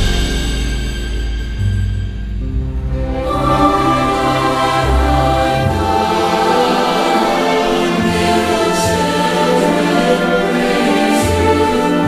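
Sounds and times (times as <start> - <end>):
low bass notes: 0.0 - 6.7
orchestral accompaniment: 0.0 - 12.0
choir singing a hymn: 3.0 - 12.0.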